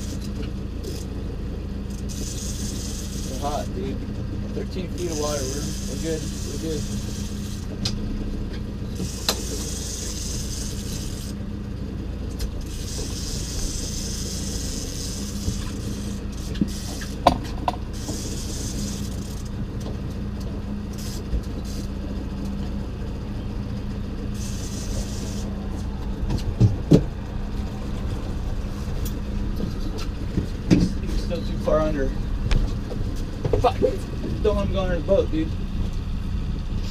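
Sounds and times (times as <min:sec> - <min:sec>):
outboard motor running: 0:00.0 - 0:36.9
water hissing: 0:24.4 - 0:25.6.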